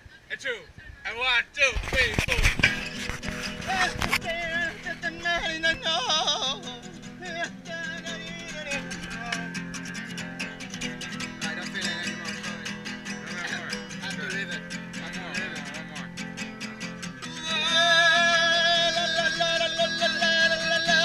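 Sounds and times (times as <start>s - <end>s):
acoustic guitar strumming: 1.9s - 21.0s
man singing: 3.6s - 16.1s, 17.2s - 21.0s.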